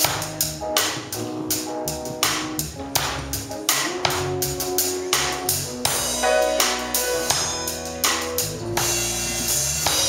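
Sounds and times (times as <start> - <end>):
drum kit beat: 0.0 - 10.0
electric bass line: 0.0 - 10.0.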